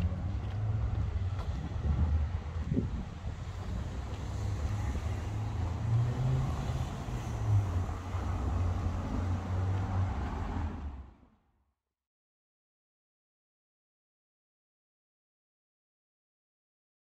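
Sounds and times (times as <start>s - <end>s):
cars passing: 0.0s - 11.4s.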